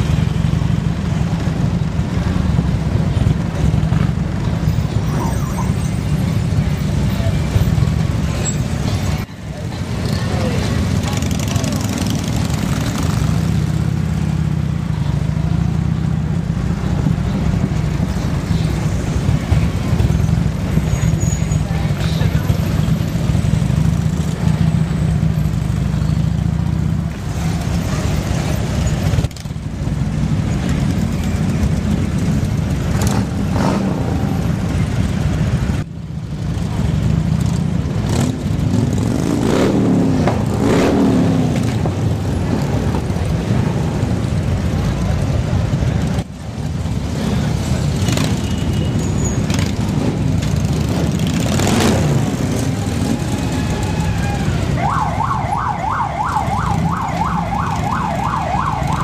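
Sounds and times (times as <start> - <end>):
motorcycle engines rumbling: 0.0 - 59.0
motorcycle engine revs: 32.9 - 34.6, 37.4 - 42.0, 47.0 - 53.9.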